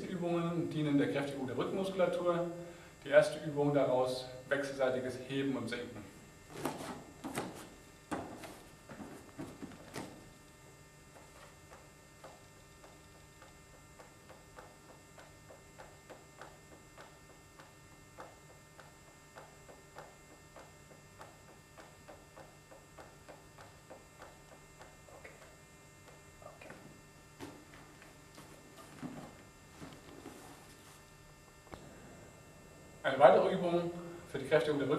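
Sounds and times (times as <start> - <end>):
faint electrical hum: 0.0 - 34.9
rustles and knocks on gym mat: 6.5 - 10.3, 27.4 - 31.1
faint ticks: 11.1 - 26.3.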